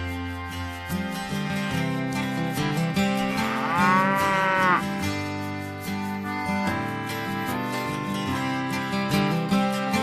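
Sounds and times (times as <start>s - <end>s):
acoustic guitar music: 0.0s - 10.0s
cow mooing: 3.3s - 4.9s.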